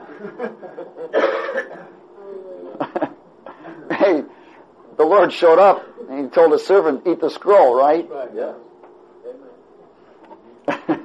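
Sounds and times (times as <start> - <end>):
person coughing: 1.1 - 1.9.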